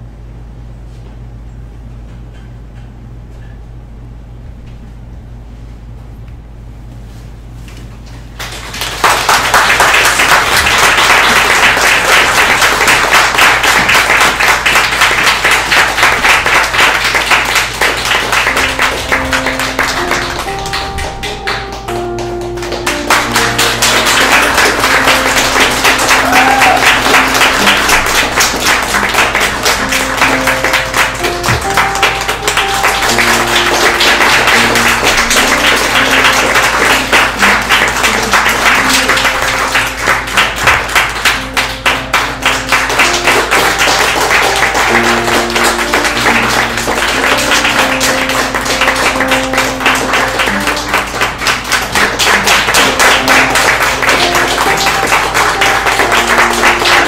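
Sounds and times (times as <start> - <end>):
audience applause: 8.3 - 57.0
upbeat music: 14.4 - 57.0.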